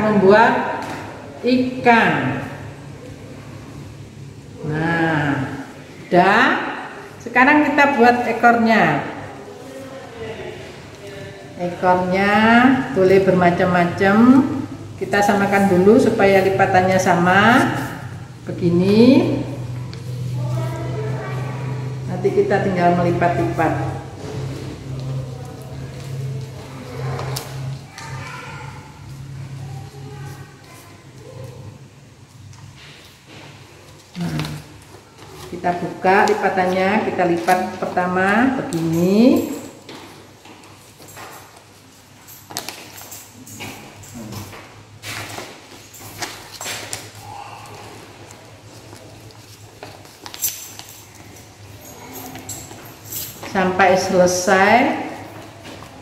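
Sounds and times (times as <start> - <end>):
paper being folded and creased: 45.2 - 51.2.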